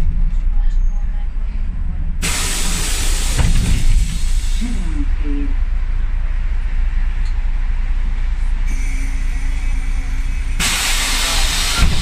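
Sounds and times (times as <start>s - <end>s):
bus diesel engine rumbling: 0.0s - 12.0s
compressed air hiss: 2.2s - 4.7s, 10.6s - 12.0s.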